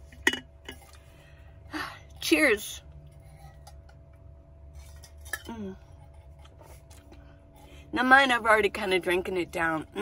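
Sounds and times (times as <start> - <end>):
small electric fan humming: 0.0 - 10.0.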